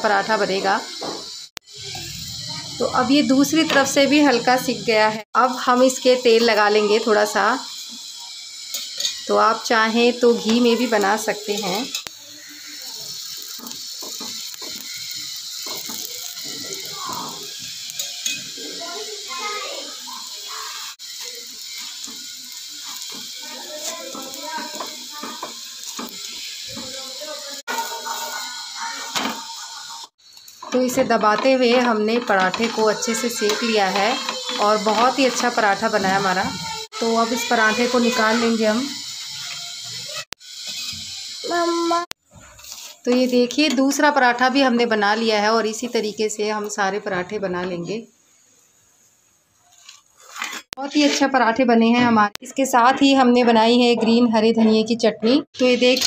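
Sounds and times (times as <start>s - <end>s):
oil sizzling in pan: 0.0s - 56.0s
spoon scraping and knocking pan: 8.6s - 9.6s, 10.2s - 18.6s, 21.1s - 29.9s, 30.5s - 36.8s, 42.3s - 44.0s, 49.8s - 51.4s.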